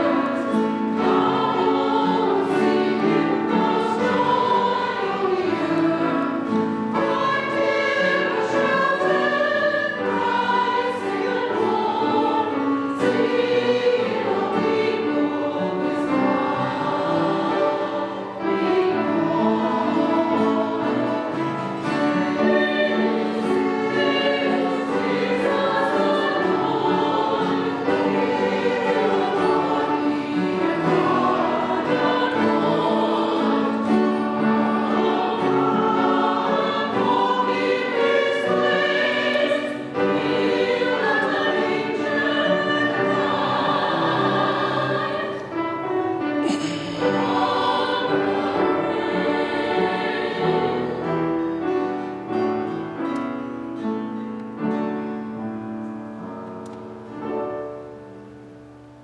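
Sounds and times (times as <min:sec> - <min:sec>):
choir singing a hymn: 0:00.0 - 0:58.4
piano: 0:00.0 - 0:59.0.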